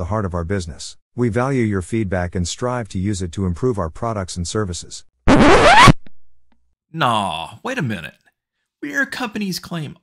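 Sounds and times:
record scratch: 0:05.3 - 0:06.1.

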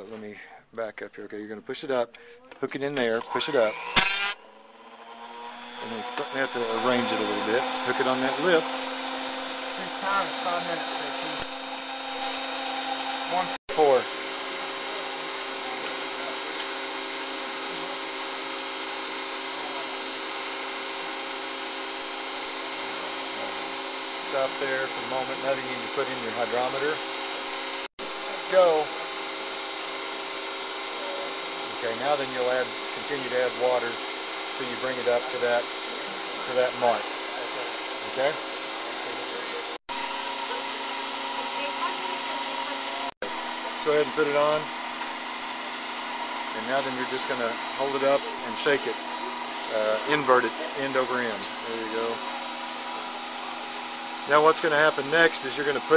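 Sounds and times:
electric motor hum: 0:03.0 - 0:55.9
steady tones: 0:03.2 - 0:14.1.

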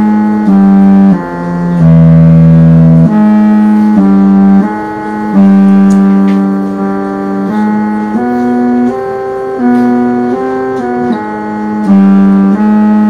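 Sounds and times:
electronic keyboard melody: 0:00.0 - 0:13.0.

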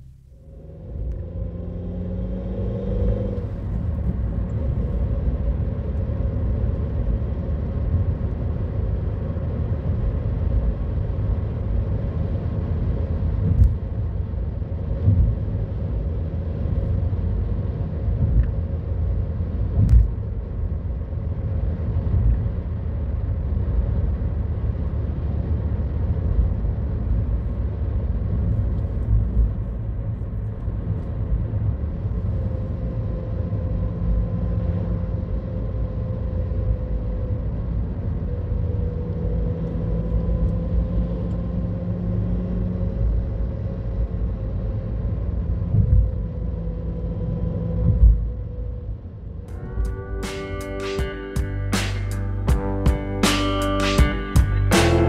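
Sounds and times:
car engine and tyre rumble: 0:00.0 - 0:55.0.

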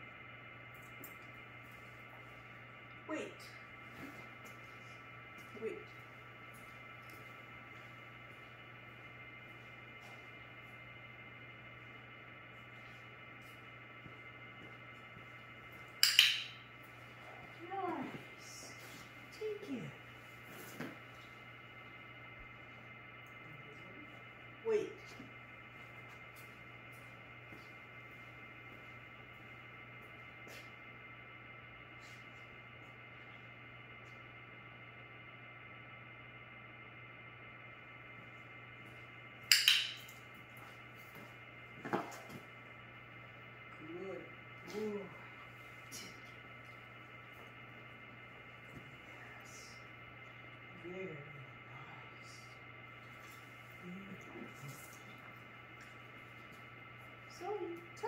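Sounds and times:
steady low hum: 0:00.0 - 0:58.0.

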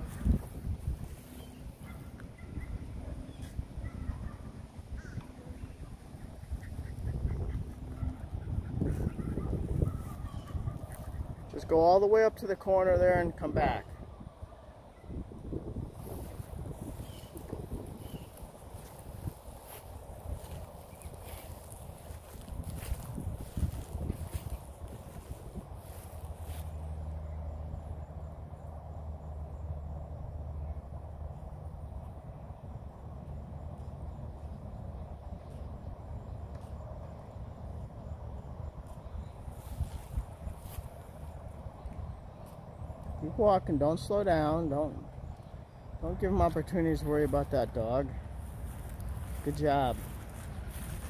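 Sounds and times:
wind on microphone: 0:00.0 - 0:27.4, 0:32.0 - 0:43.3, 0:44.8 - 0:51.0.

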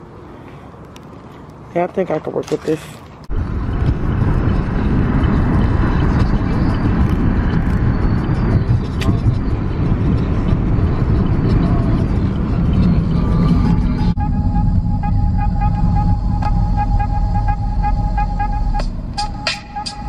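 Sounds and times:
car cabin road rumble: 0:01.7 - 0:20.0.

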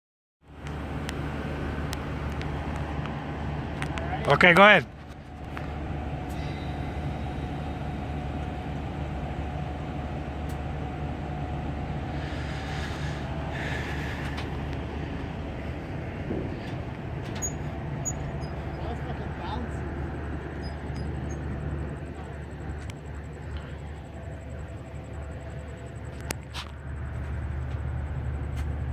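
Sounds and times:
truck engine idling: 0:00.5 - 0:28.9.

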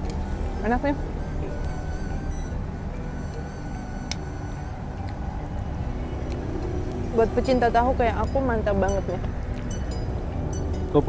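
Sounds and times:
low rumble of street traffic: 0:00.0 - 0:11.0.

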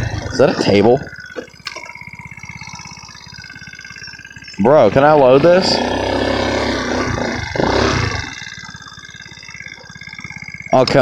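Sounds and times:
scooter engine revving and idling: 0:00.0 - 0:11.0.

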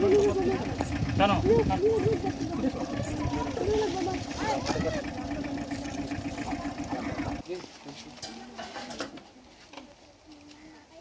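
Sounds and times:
indistinct outdoor voices: 0:00.0 - 0:11.0.

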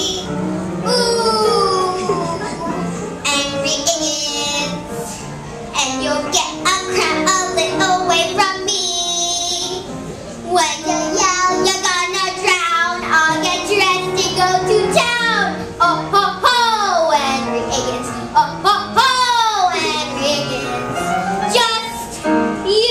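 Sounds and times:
girl singing: 0:00.0 - 0:05.2, 0:05.8 - 0:22.9
musical accompaniment: 0:00.0 - 0:22.9.

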